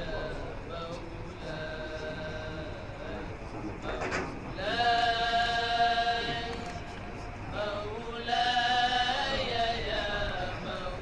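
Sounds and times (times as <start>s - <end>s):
men chanting: 0.0s - 6.8s, 7.5s - 11.0s.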